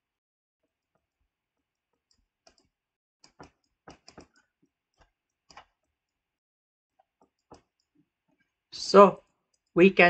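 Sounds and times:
stylus tapping on drawing tablet: 0:01.9 - 0:06.0, 0:07.0 - 0:08.1.

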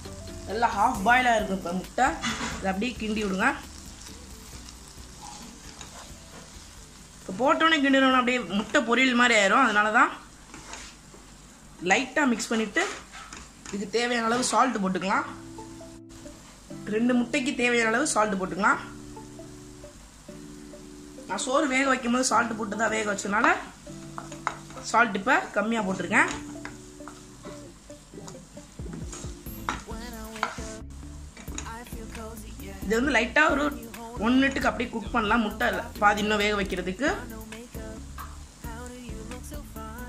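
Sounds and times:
eggs sizzling in a pan: 0:00.0 - 0:11.8, 0:12.4 - 0:40.0
wooden spatula stirring: 0:02.2 - 0:07.0.

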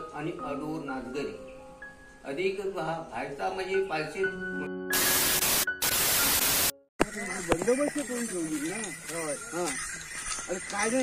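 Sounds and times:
static hiss glitch: 0:04.9 - 0:06.8.

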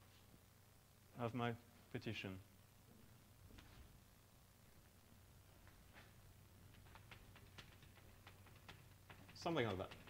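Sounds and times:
low room hum: 0:00.0 - 0:10.0
chalk tapping on blackboard: 0:06.8 - 0:10.0.

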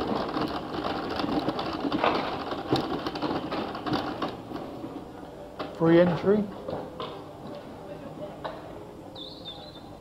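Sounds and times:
wheelchair rolling over stone paving: 0:00.0 - 0:05.2.

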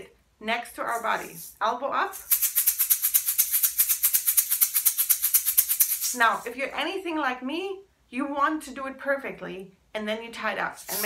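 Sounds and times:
handheld shaker rattling: 0:00.9 - 0:06.5, 0:10.8 - 0:11.0.

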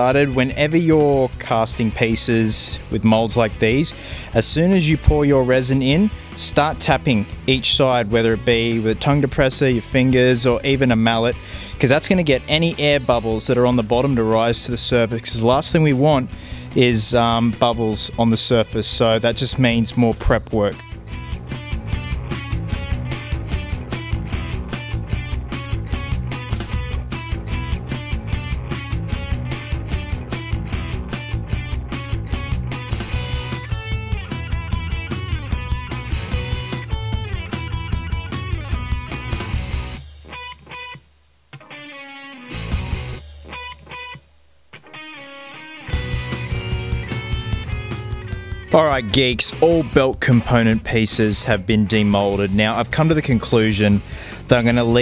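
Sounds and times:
rock music with electric guitar: 0:00.0 - 0:55.0.

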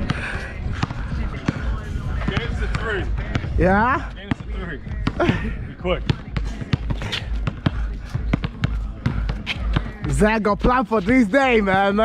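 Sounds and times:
basketball bouncing on asphalt: 0:00.0 - 0:12.0.

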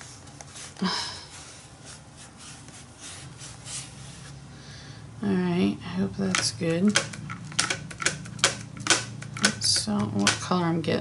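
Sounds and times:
sharp clicks and taps: 0:06.2 - 0:10.5.

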